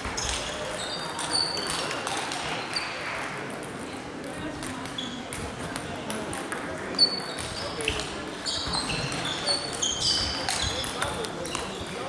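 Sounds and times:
table tennis balls clicking: 0.0s - 12.0s.

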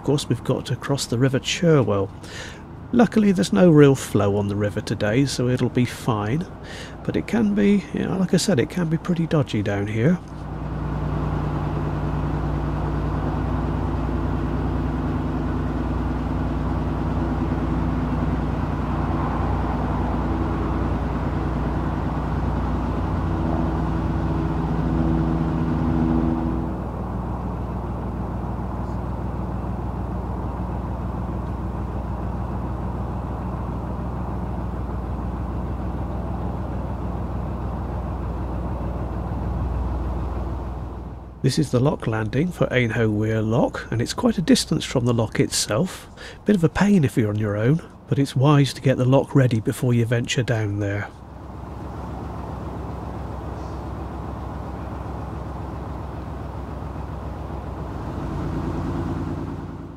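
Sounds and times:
boat engine droning: 0.0s - 59.9s.

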